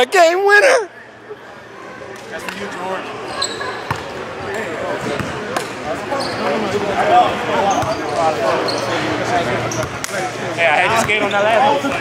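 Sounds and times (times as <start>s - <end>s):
basketball bouncing on court: 3.9s - 4.1s, 5.1s - 5.4s.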